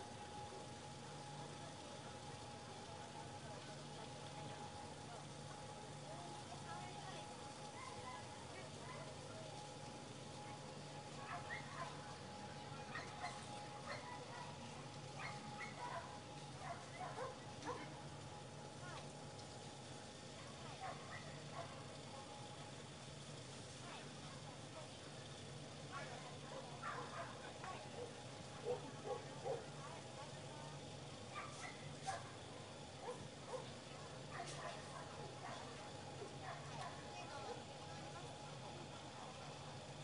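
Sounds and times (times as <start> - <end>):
faint dog barks and yips: 11.2 - 12.0, 12.8 - 14.6, 15.2 - 17.9, 26.0 - 27.4, 28.0 - 29.7, 31.3 - 32.4, 33.0 - 35.6
dog barking and yipping: 15.2 - 16.0.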